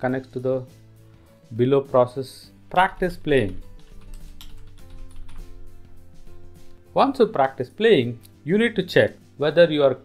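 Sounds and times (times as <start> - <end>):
background music with held notes: 0.0 - 10.0
computer keyboard typing: 3.0 - 5.6.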